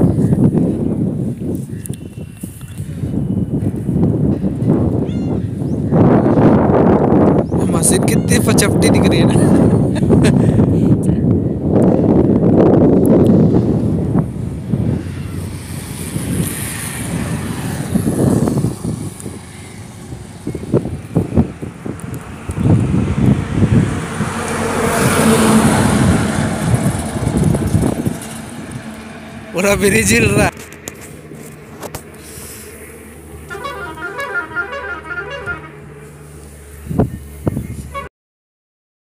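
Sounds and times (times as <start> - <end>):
passing vehicle: 0.0 - 38.1
road traffic: 0.0 - 38.1
wind buffeting microphone: 0.0 - 38.1.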